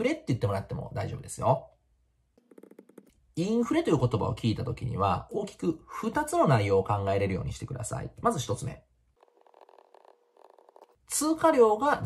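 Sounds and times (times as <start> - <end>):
pen scratching while writing: 2.4 - 3.1, 9.2 - 11.0.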